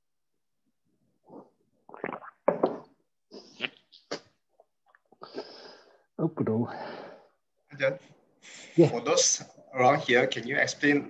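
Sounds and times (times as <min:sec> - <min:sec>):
man gulping water: 0:01.2 - 0:05.6
breathing: 0:05.2 - 0:07.5.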